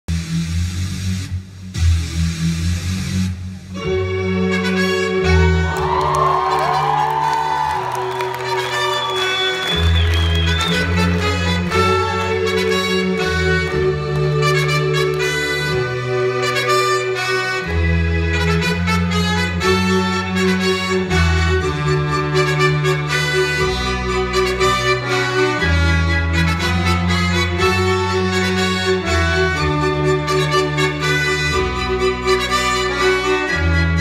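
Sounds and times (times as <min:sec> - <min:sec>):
brass instruments: 0:00.1 - 0:34.0.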